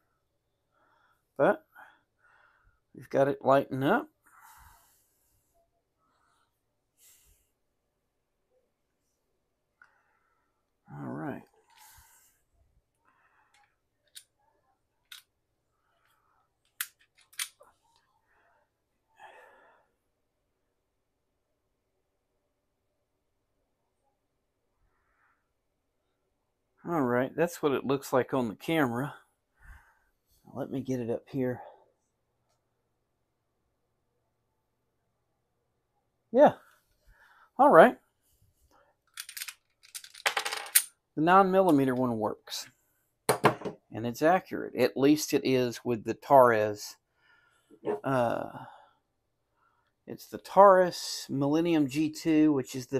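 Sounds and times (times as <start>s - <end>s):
small metal parts clicking: 16.7s - 17.6s, 39.1s - 40.9s.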